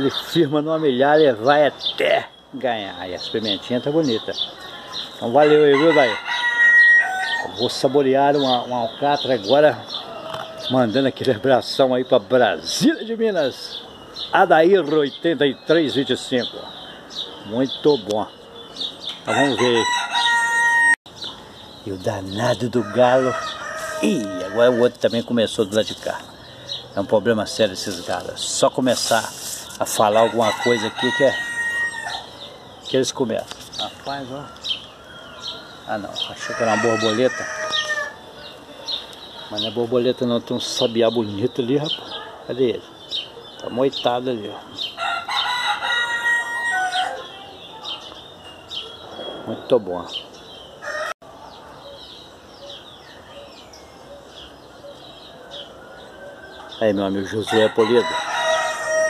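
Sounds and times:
rooster crowing: 5.4 - 7.6, 19.3 - 21.0, 22.6 - 25.2, 30.0 - 32.8, 34.4 - 38.5, 45.0 - 47.4, 50.8 - 52.2, 55.3 - 56.8, 57.4 - 59.0.

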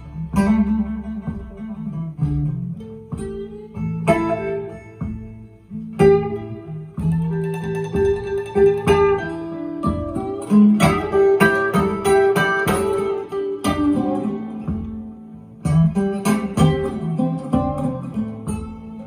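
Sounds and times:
acoustic blues guitar: 0.0 - 19.0.

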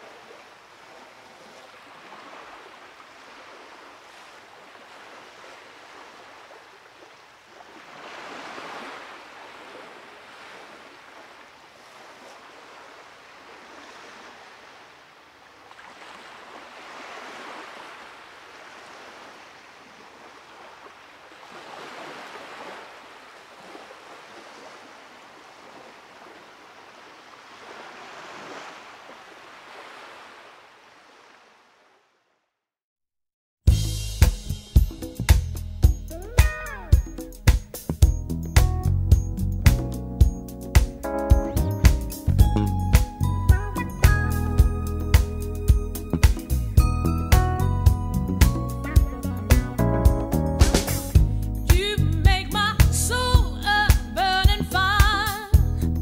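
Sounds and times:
ocean waves breaking on beach: 0.0 - 32.3.

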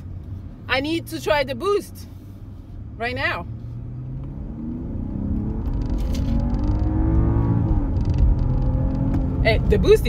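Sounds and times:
road rumble: 0.0 - 10.0
car engine accelerating: 2.4 - 10.0.

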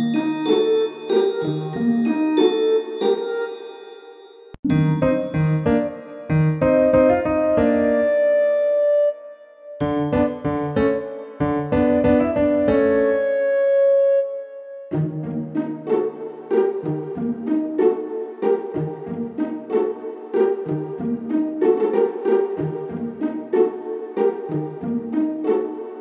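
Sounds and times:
held chord: 0.0 - 7.7, 9.8 - 13.1
music with short even notes: 0.0 - 8.0, 9.8 - 13.2.

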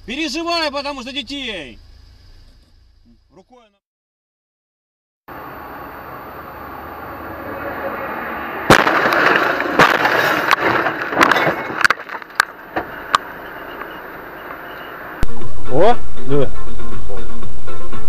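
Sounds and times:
road noise: 0.0 - 3.8, 5.3 - 17.6
car crash impact: 8.6 - 15.1
sharp knocks and bangs: 8.7 - 13.3.

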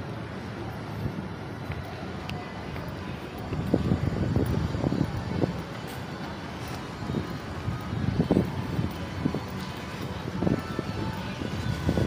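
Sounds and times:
wind buffeting microphone: 0.9 - 12.0.

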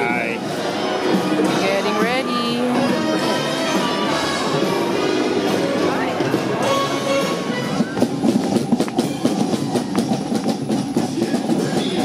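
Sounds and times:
marching drum and cymbal hits: 0.0 - 12.0.

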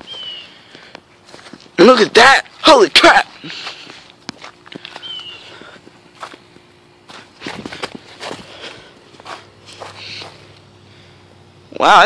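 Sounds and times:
footsteps on snowy leaves: 0.0 - 10.5.

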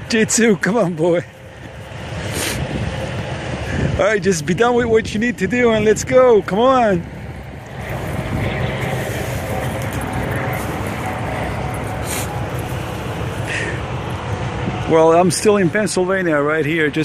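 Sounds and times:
vehicle rumble: 0.0 - 17.0
rustling in dry grass: 7.2 - 13.7.

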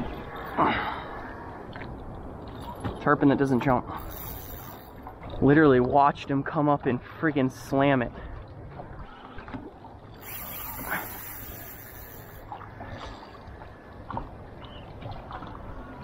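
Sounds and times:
water lapping against boat hull: 8.1 - 16.0
brief high hiss: 10.2 - 12.4.

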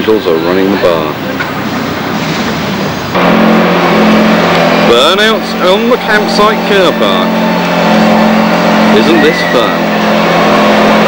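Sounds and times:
rough even noise: 1.7 - 11.0
car engine revving in burnout: 2.0 - 11.0.

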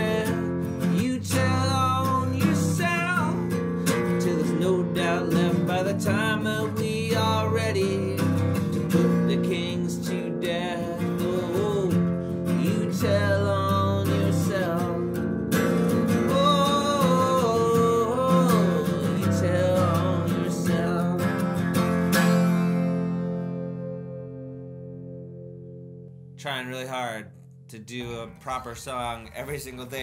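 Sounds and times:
man singing: 0.0 - 21.8
acoustic guitar strumming: 0.0 - 30.0.

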